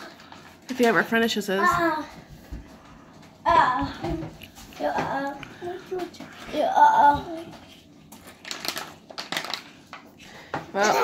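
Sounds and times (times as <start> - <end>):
plastic packaging rustling: 0.0 - 11.0.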